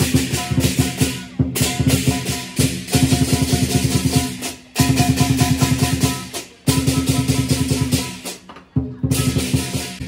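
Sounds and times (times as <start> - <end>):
big drum beaten fast: 0.0 - 10.0
cymbals clashing: 0.0 - 10.0.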